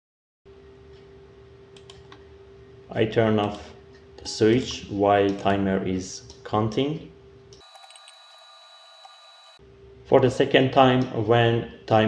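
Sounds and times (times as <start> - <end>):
person speaking: 2.9 - 7.1.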